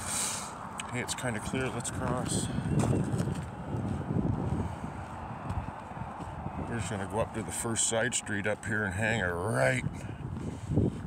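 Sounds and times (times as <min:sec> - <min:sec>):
footsteps on asphalt: 0:00.6 - 0:11.0
microphone handling rumble: 0:01.4 - 0:06.8.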